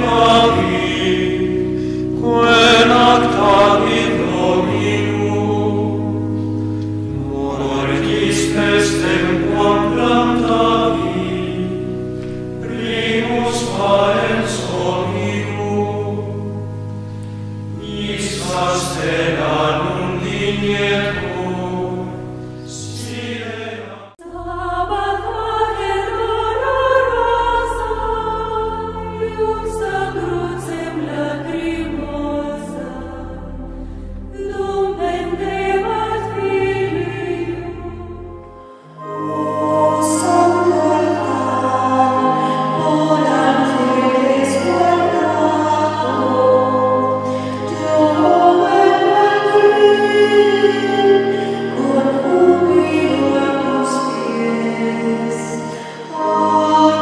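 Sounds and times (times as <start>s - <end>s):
choir singing long held notes: 0.0s - 57.0s.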